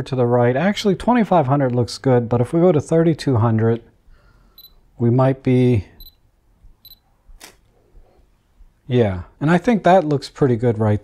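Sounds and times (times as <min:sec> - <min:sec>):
short high electronic beeps: 0:04.6 - 0:04.8, 0:06.0 - 0:06.2, 0:06.8 - 0:07.1
camera shutter click: 0:07.4 - 0:07.6.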